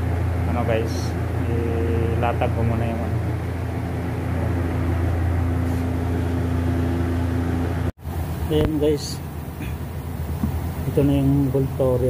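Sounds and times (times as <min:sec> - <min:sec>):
workshop machinery humming: 0:00.0 - 0:12.0.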